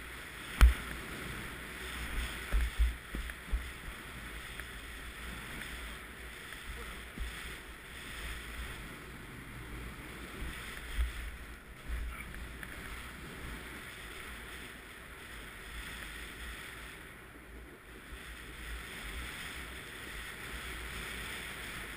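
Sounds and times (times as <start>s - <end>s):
snow hissing under skis: 0.0s - 21.9s
wind buffeting microphone: 0.0s - 21.9s.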